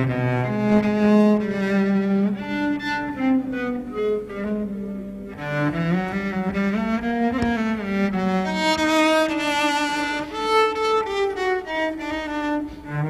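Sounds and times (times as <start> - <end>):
bowed cello melody: 0.0 - 13.0.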